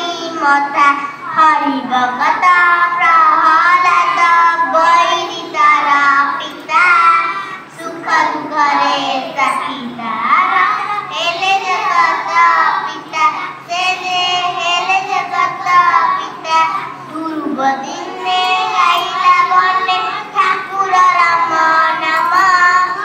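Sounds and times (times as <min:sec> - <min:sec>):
girls singing together: 0:00.0 - 0:23.0.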